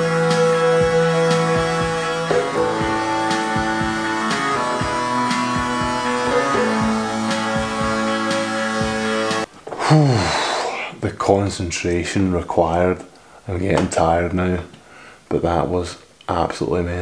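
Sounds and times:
distorted electric guitar: 0.0 - 9.5
drum beat: 0.0 - 9.5.

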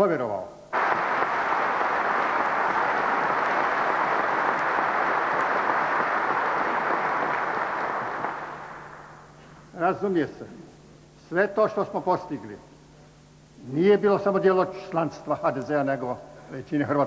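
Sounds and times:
large audience applauding: 0.7 - 9.2.

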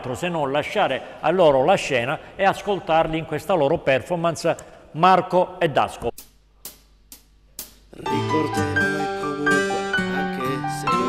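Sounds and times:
backing track music: 6.7 - 11.0.

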